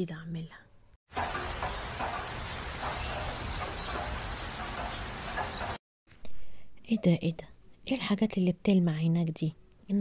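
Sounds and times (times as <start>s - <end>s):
steady outdoor hiss: 1.1s - 5.8s
faint birds chirping: 1.2s - 5.8s.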